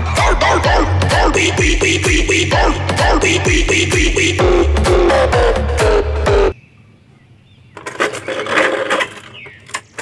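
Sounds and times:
electronic music: 0:00.0 - 0:06.6.

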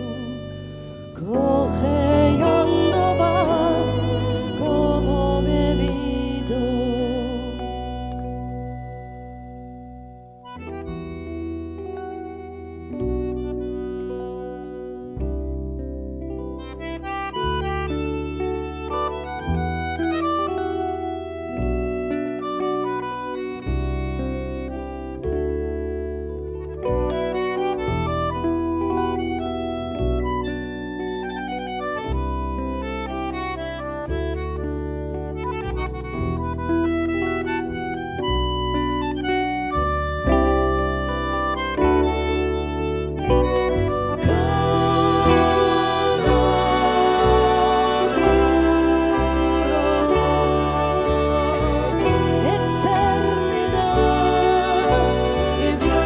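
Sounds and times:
bandoneon melody: 0:00.0 - 0:56.0
deep bass notes: 0:00.0 - 0:56.0
keyboard: 0:00.0 - 0:56.0
violin: 0:00.0 - 0:56.0.

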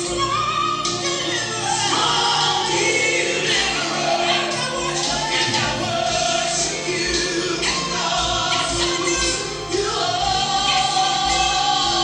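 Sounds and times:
gospel choir singing: 0:00.0 - 0:12.0.

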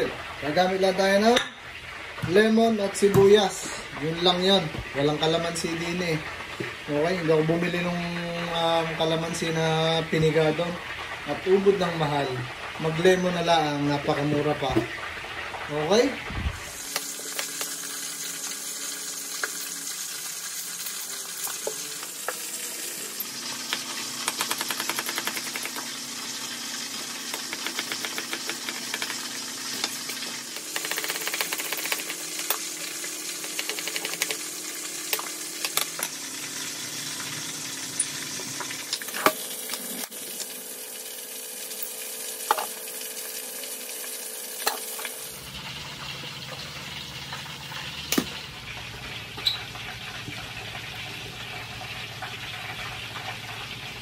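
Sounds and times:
oil sizzling deep-frying: 0:00.0 - 0:54.0.

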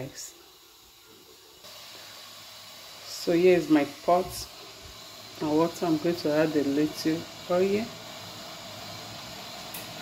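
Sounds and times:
pan of liquid hissing on hob: 0:00.0 - 0:10.0.

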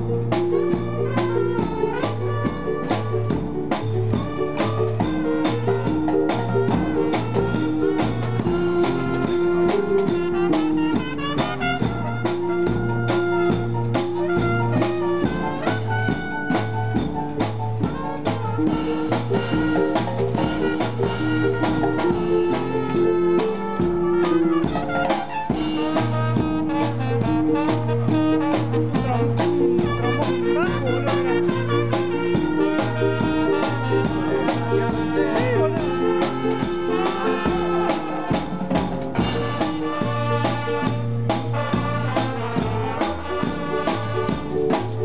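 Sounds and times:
brass and woodwinds playing: 0:00.0 - 0:45.0
repeating bass line: 0:00.0 - 0:45.0
steady drum beat: 0:00.0 - 0:45.0.

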